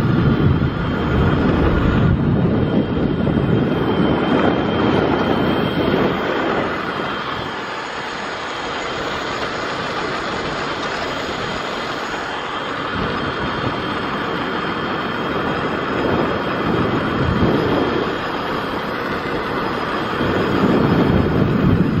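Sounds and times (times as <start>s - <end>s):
tyre noise on asphalt: 0.0s - 22.0s
wind buffeting microphone: 0.0s - 22.0s.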